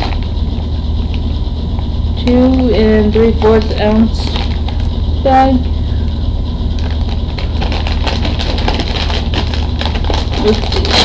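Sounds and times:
steady low hum: 0:00.0 - 0:11.0
foil chip bag crinkling: 0:03.3 - 0:05.0, 0:06.7 - 0:11.0.

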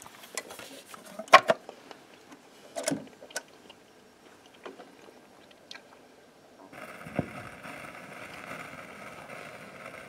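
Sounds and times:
record surface hiss and crackle: 0:00.0 - 0:10.0.

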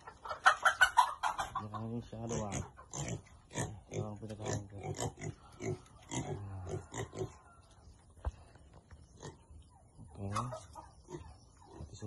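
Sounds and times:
pigs grunting: 0:02.0 - 0:07.6, 0:10.3 - 0:12.0.

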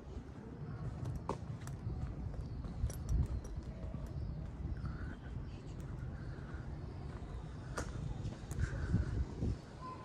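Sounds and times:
footsteps on stone paving: 0:00.8 - 0:04.9, 0:05.7 - 0:09.6.

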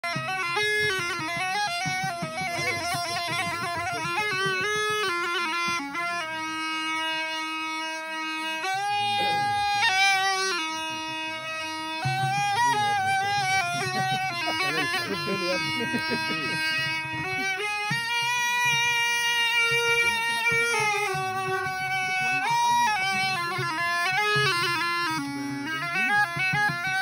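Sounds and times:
flute solo melody: 0:00.1 - 0:27.0.

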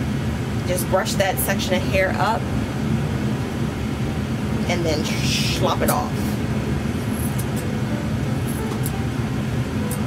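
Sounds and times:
scissors snipping hair: 0:07.2 - 0:07.7, 0:08.4 - 0:09.0.

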